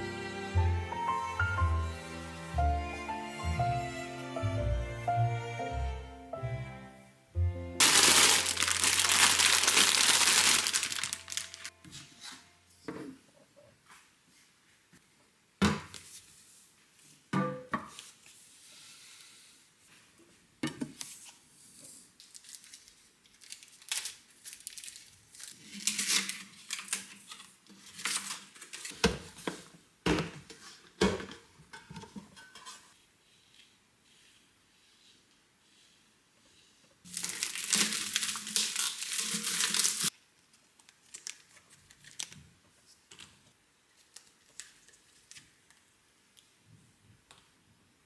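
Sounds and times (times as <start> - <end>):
plastic film crinkling: 7.8 - 11.8, 22.2 - 28.9, 37.1 - 42.4, 43.9 - 45.8
wrapping tearing: 7.8 - 11.8, 22.2 - 28.9, 37.1 - 42.4.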